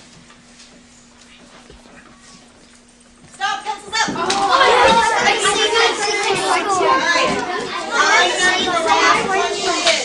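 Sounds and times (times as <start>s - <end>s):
children talking and calling out: 3.4s - 10.0s.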